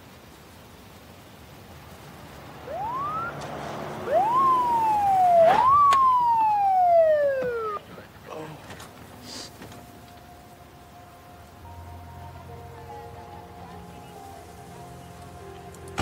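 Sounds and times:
police siren wailing: 2.3s - 8.1s, 9.6s - 16.0s.

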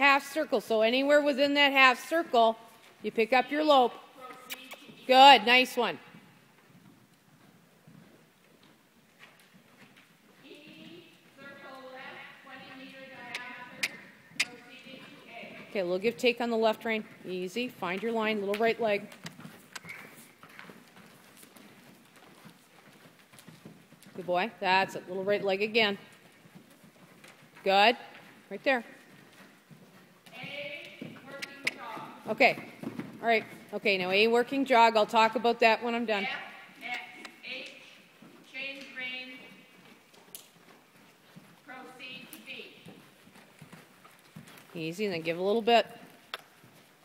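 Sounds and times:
faint horse hoofbeats: 0.0s - 47.0s.

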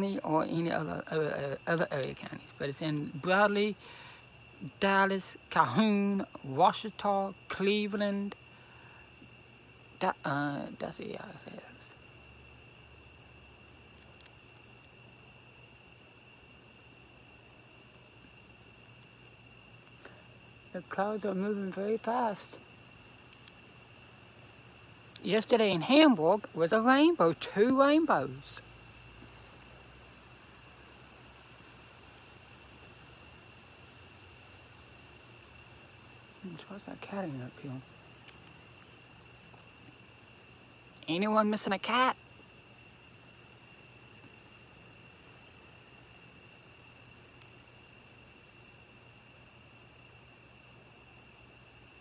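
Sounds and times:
night insects trilling: 0.0s - 52.0s.

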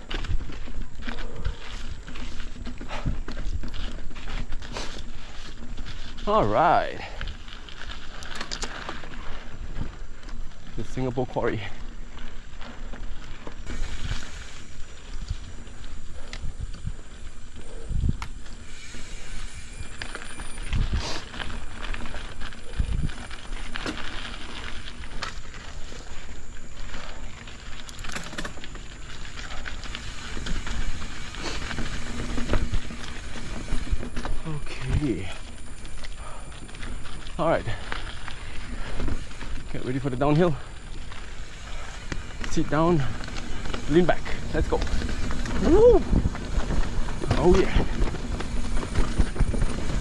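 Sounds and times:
bike tyres on dirt trail: 0.0s - 50.0s.

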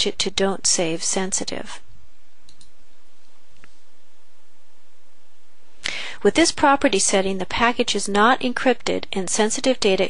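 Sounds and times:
steady background hiss: 0.0s - 10.0s
faint clicks: 2.5s - 2.8s.

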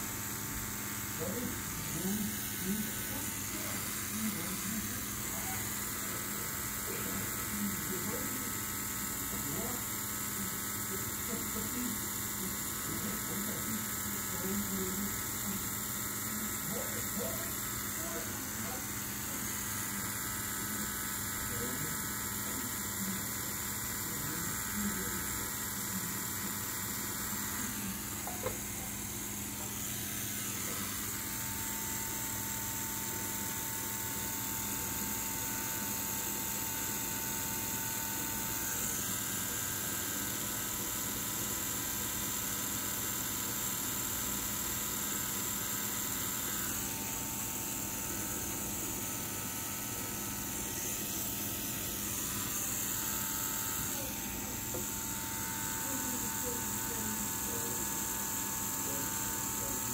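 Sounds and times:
tattoo machine humming: 0.0s - 59.9s.

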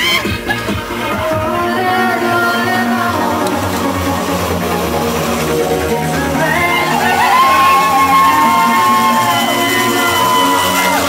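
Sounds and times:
loud dance music: 0.0s - 11.0s.

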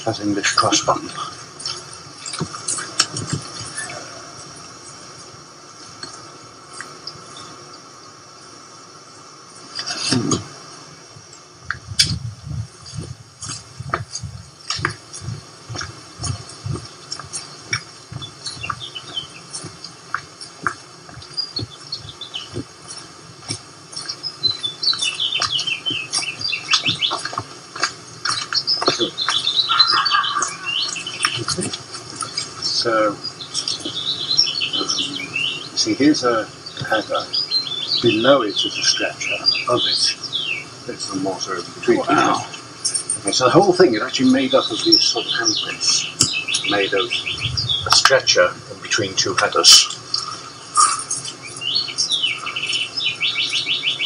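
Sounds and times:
small birds chirping: 0.0s - 54.0s
footsteps walking: 0.6s - 7.2s, 11.6s - 38.1s.

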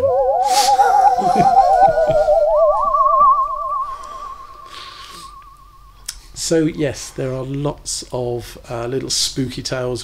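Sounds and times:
wavering theremin tone: 0.0s - 6.0s.

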